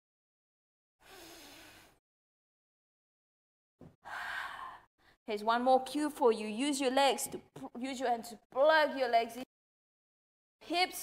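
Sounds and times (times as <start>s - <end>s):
woman exhaling: 1.0s - 2.0s, 4.0s - 4.9s.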